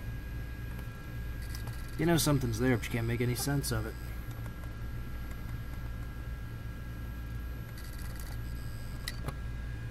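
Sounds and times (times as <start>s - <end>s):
hard drive humming and whining: 0.0s - 9.9s.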